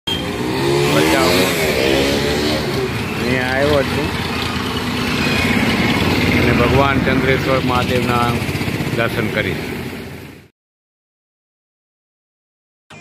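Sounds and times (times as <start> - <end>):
auto-rickshaw engine running: 0.1 - 10.5
motorbike and scooter engines: 0.1 - 10.5
person talking: 6.4 - 9.6.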